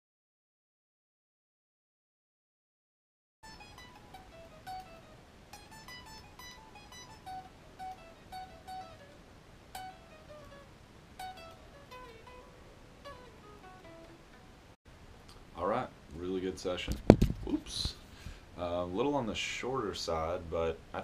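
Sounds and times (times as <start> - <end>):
electric guitar riff: 3.4 - 14.7.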